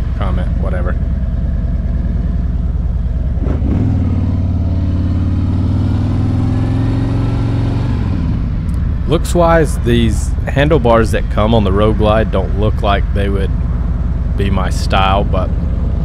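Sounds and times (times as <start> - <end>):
motorcycle engine running: 0.0 - 16.0.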